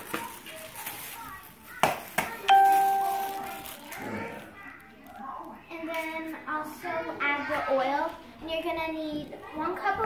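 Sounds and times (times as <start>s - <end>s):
doorbell chime: 2.5s - 3.8s.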